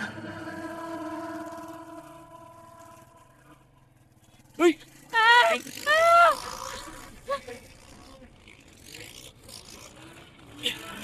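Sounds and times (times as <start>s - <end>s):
street and engine noise: 0.0s - 11.0s.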